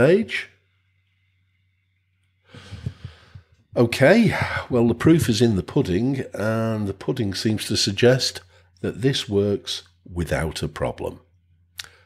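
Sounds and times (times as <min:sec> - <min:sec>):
man sighing: 0:02.6 - 0:03.4.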